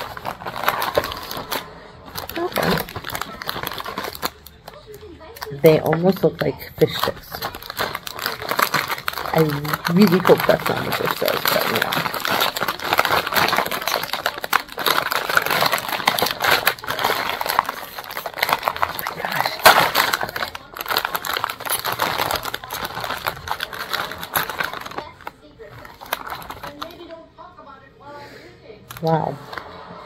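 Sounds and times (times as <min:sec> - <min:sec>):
plastic snack bag crinkling: 0:00.0 - 0:27.4, 0:28.9 - 0:29.9.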